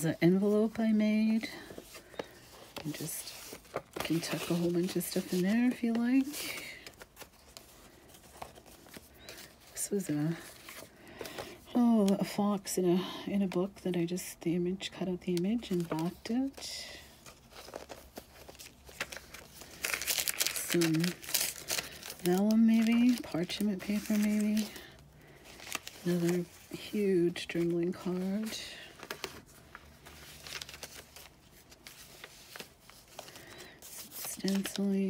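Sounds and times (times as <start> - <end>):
paper pages rustling: 0.0 - 11.6, 15.5 - 35.0.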